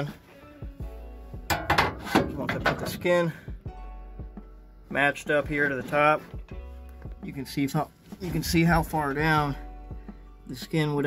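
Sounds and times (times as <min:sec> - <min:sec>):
quiet background music: 0:00.0 - 0:11.0
sheet metal rattling and scraping: 0:01.5 - 0:03.2.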